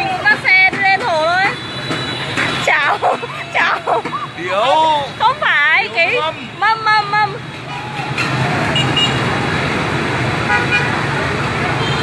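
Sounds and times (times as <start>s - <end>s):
motorbikes and cars passing: 0.0s - 12.0s.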